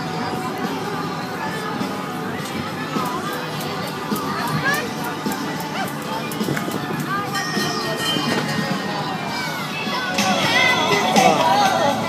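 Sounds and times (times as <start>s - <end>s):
children's voices: 0.0s - 12.0s
crowd chatter: 0.0s - 12.0s
fairground music: 0.0s - 12.0s.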